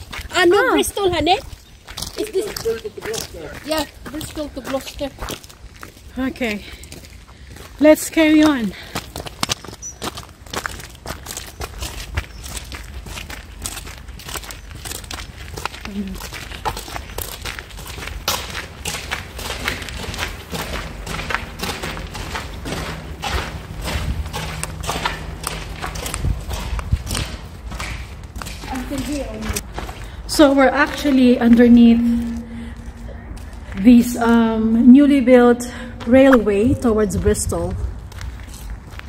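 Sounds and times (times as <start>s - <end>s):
footsteps on gravel: 0.0s - 35.3s, 36.0s - 39.0s
steady low rumble: 11.7s - 35.0s.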